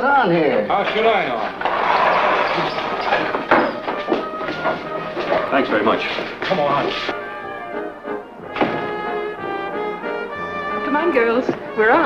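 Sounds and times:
brass band playing held chords: 0.8 - 12.0.

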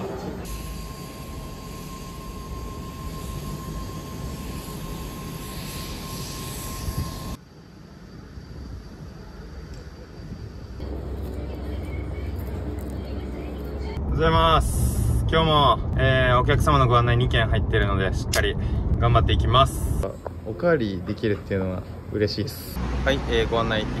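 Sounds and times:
low rumble: 10.3 - 20.0.

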